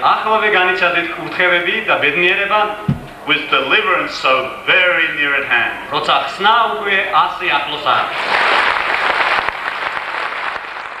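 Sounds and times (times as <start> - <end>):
large audience applauding: 8.2 - 11.0.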